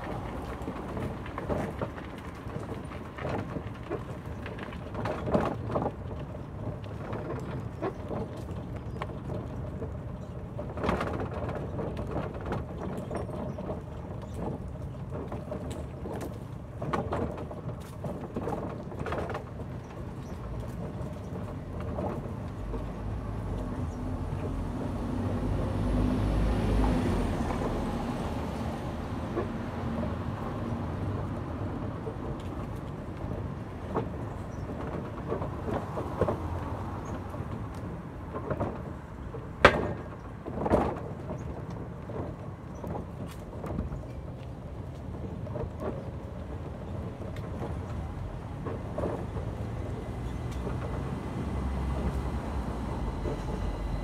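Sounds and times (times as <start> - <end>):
passing vehicle rumble: 18.8 - 54.0.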